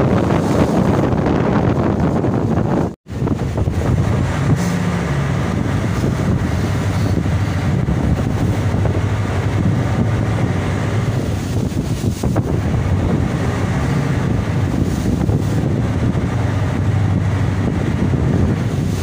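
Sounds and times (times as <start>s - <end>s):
boat engine running: 0.0s - 19.0s
wind buffeting microphone: 0.0s - 19.0s.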